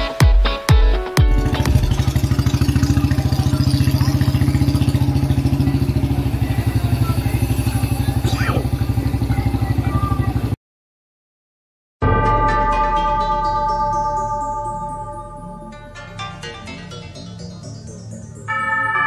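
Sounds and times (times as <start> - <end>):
engine running with even pulse: 1.4 - 10.6.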